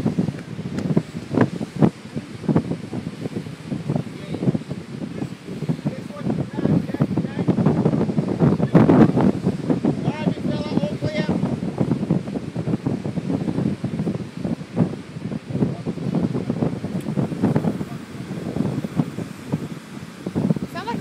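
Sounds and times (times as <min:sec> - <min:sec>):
wind buffeting microphone: 0:00.0 - 0:21.0
person speaking: 0:20.6 - 0:21.0.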